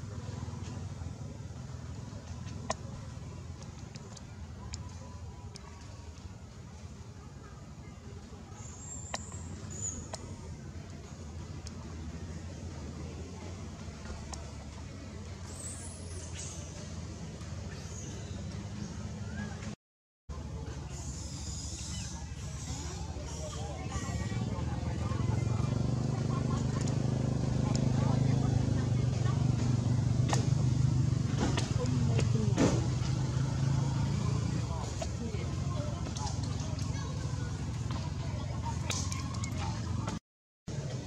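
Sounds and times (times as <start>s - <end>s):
short squeaky calls: 20.9s - 24.4s
low engine hum: 22.7s - 41.0s.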